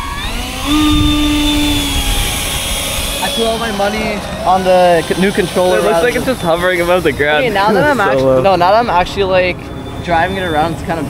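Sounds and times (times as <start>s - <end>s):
electric ducted fan whine: 0.0s - 11.0s.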